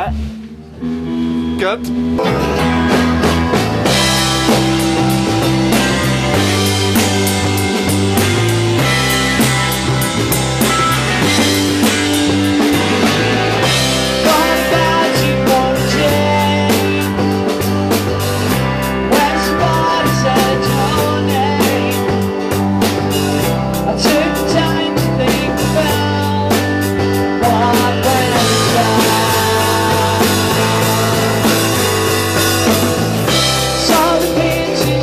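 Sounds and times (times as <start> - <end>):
bass line: 0.0 - 35.0
drum kit steady beat: 0.0 - 35.0
electric guitar: 0.0 - 35.0.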